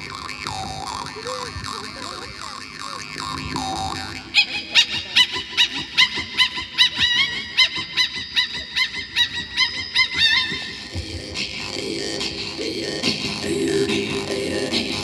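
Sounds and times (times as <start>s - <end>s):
woman throat singing: 10.9s - 15.0s.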